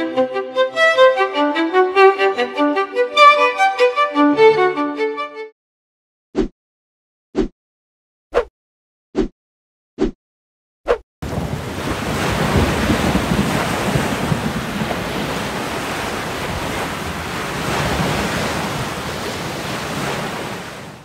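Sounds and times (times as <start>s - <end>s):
ocean waves: 11.2s - 21.0s
wind gusts: 11.2s - 21.0s.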